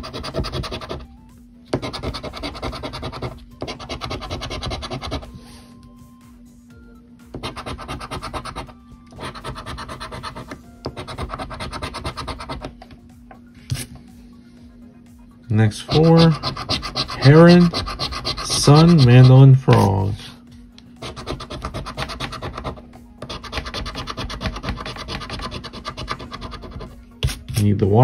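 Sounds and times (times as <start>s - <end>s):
coin scraping a scratch card: 0.0s - 1.0s, 1.8s - 5.3s, 7.5s - 12.7s, 15.9s - 20.0s, 21.0s - 27.7s.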